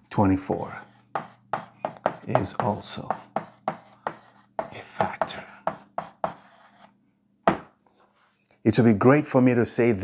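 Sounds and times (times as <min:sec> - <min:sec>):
chalk scraping on blackboard: 0:00.7 - 0:07.0
chalk tapping on blackboard: 0:00.8 - 0:06.9.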